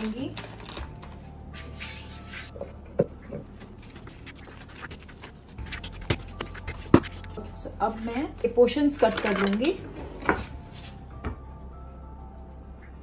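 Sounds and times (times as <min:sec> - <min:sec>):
steady low hum: 0:01.0 - 0:08.7.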